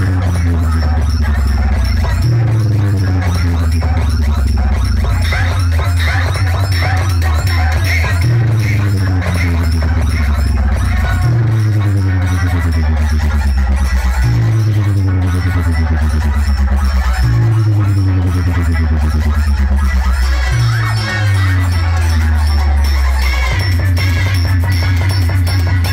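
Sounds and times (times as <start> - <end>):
loud bass-heavy electronic music: 0.0 - 25.9.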